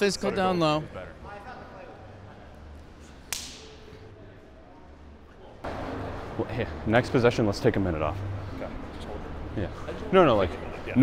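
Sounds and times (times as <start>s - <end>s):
ball smack in large hall: 3.2s - 3.9s.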